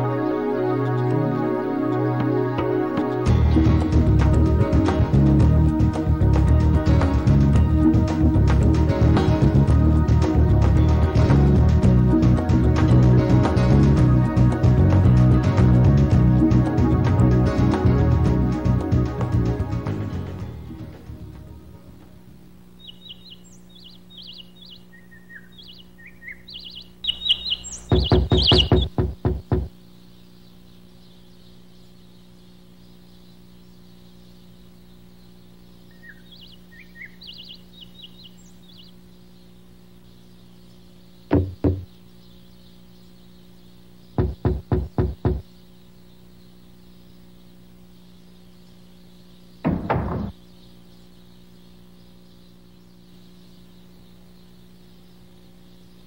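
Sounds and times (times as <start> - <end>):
birds chirping: 0.0 - 56.0
faint steady hum: 0.0 - 56.0
sharp knocking on a door: 27.9 - 29.8, 41.3 - 41.9, 44.2 - 45.5.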